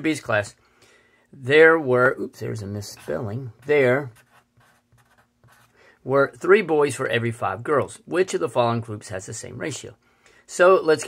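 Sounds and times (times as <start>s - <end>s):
marker scratching on paper: 2.8s - 5.8s.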